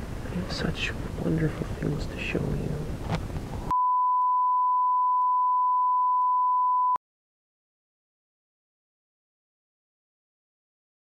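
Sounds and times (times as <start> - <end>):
steady electronic beep: 3.7 - 7.0.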